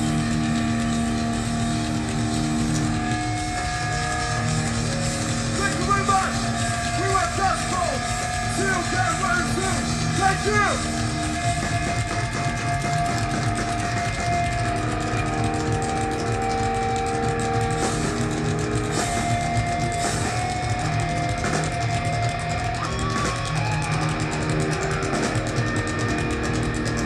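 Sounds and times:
distorted electric guitars: 0.0 - 27.0
heavy metal band playing live: 0.0 - 27.0.

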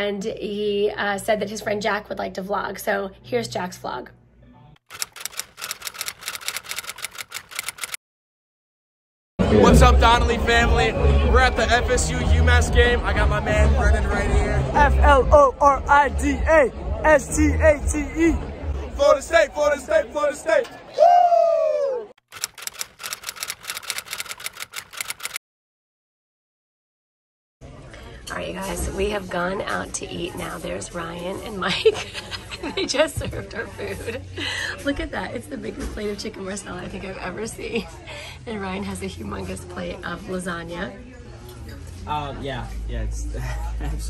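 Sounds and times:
keystroke clicks: 4.9 - 8.0, 22.3 - 25.4.

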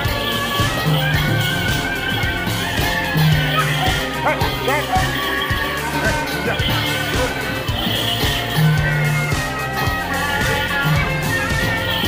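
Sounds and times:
drum strokes: 0.0 - 12.0
high yelps: 0.0 - 12.0
ringing cymbals: 0.0 - 12.0.

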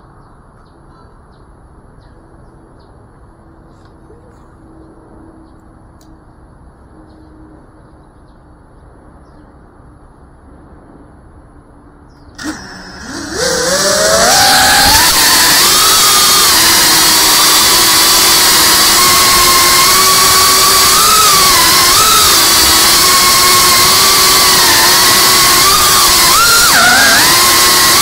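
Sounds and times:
drone motors whining: 12.4 - 28.0.

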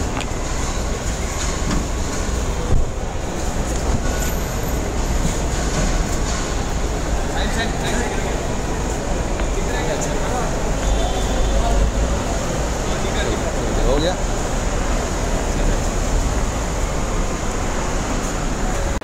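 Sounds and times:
indistinct voices: 0.0 - 19.0
traffic engine rumble: 0.0 - 19.0.

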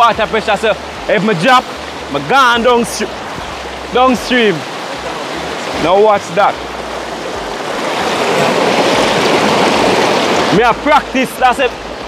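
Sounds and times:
water rushing over rocks: 0.0 - 12.0.

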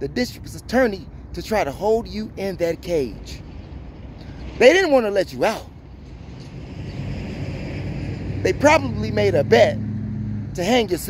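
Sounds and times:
passing vehicle engine hum: 0.0 - 11.0
road noise: 0.0 - 11.0.

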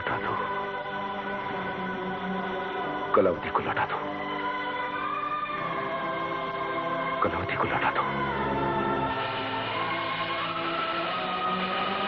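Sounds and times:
choir holding sustained chord: 0.0 - 12.0.

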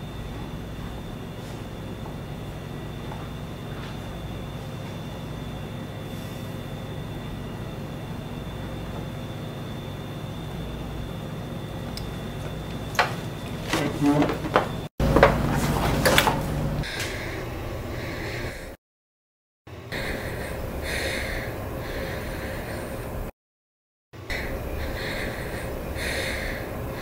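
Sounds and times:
steady low hum: 0.0 - 18.8, 19.7 - 23.3, 24.2 - 27.0.

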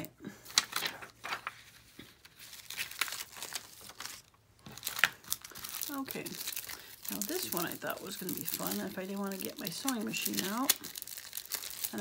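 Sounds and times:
plastic crinkling: 0.5 - 12.0.

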